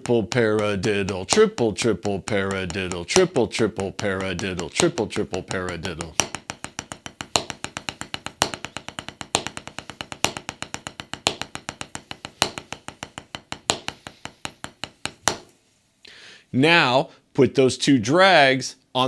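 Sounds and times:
drumsticks on practice pad: 0.0 - 15.5.

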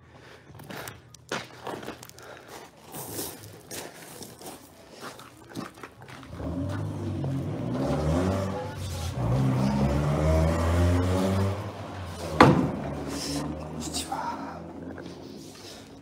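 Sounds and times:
engine humming: 5.9 - 16.0.

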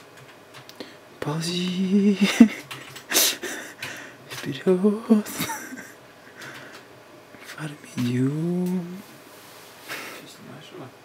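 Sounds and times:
person speaking: 1.2 - 3.7, 4.3 - 5.9, 7.4 - 9.2.

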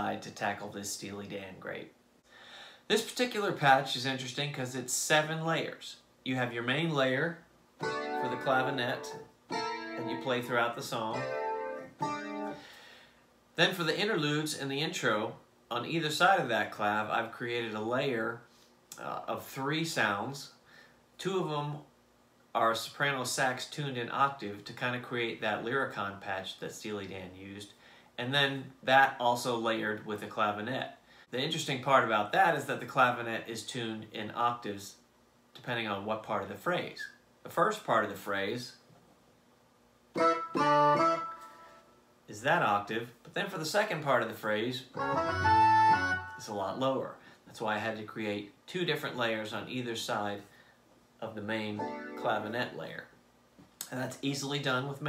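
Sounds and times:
clavinet keyboard chords: 7.8 - 12.7, 40.2 - 41.8, 45.0 - 46.4, 51.8 - 52.4.

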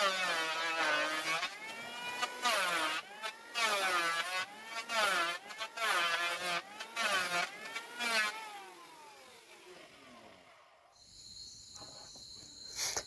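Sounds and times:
electric hand planer cutting wood: 0.0 - 10.7
crickets chirping: 10.9 - 13.0.

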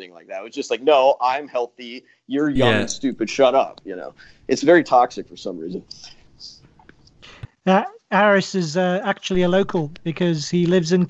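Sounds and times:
man saying uh: 2.6 - 4.8
faint breathing: 4.1 - 4.5, 5.9 - 7.5.

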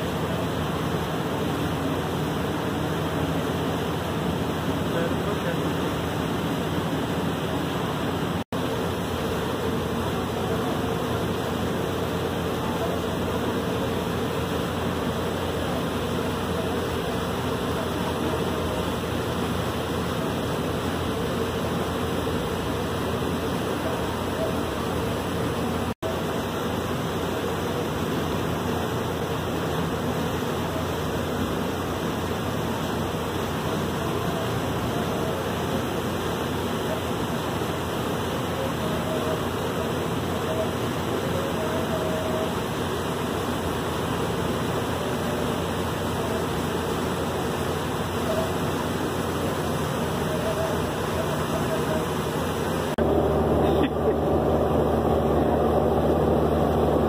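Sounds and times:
boat engine drone: 0.0 - 57.0
water rushing along hull: 0.0 - 57.0.

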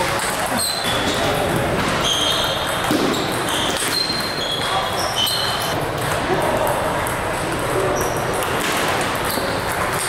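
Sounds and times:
ping pong ball clicking on paddles: 0.0 - 10.0
ping pong ball bouncing on table: 1.2 - 10.0.

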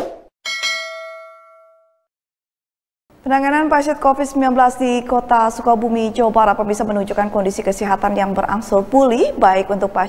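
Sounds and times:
notification bell ding: 0.5 - 2.0.

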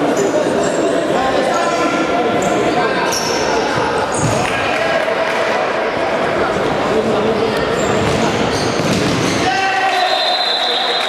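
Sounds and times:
voices echoing in hall: 0.0 - 11.0
ball dribbled and kicked: 8.0 - 9.4.

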